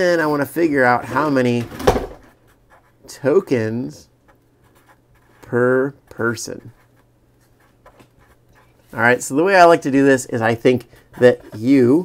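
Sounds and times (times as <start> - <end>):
marker writing on paper: 2.3 - 3.1, 4.3 - 9.0.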